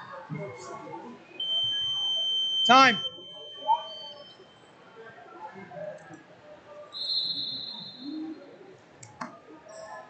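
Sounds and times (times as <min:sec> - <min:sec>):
murmur of gym hall: 0:00.0 - 0:10.0
timer tone: 0:01.4 - 0:04.6.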